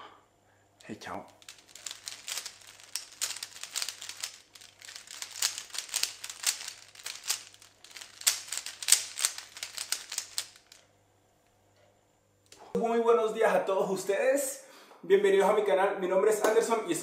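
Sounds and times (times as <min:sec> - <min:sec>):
puzzle cube plastic clicks: 0:01.3 - 0:10.8.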